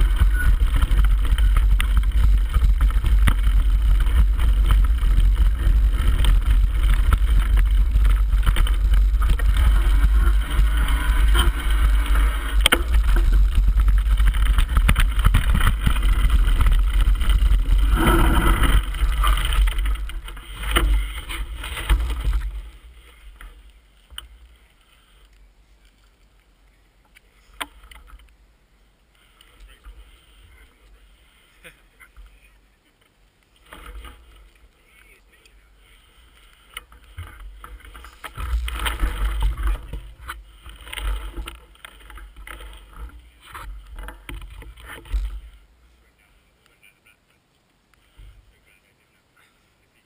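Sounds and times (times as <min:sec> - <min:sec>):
bike knocking over bumps: 0:00.0 - 0:24.4, 0:36.5 - 0:45.6
wind buffeting camera: 0:00.0 - 0:24.6, 0:36.2 - 0:45.7
faint clicks: 0:00.0 - 0:28.4.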